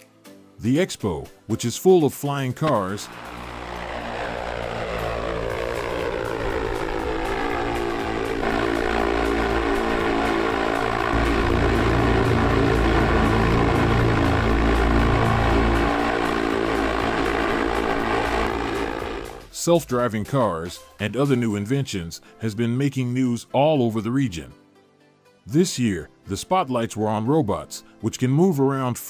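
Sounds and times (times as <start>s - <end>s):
propellers buzzing hum: 2.8s - 19.5s
heavy low rumble: 3.0s - 19.5s.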